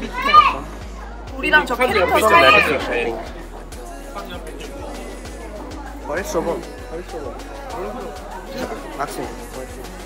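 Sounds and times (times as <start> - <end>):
background music: 0.0 - 10.0
people talking and calling out: 0.0 - 10.0.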